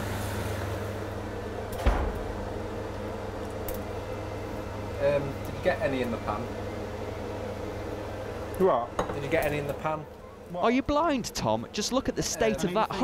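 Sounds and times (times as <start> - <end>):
steady low hum: 0.3 - 13.0.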